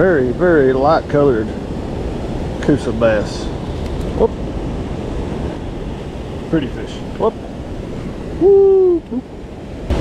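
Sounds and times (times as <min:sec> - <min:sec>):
wind noise on microphone: 0:00.0 - 0:10.0
person shouting whoop: 0:08.4 - 0:09.2.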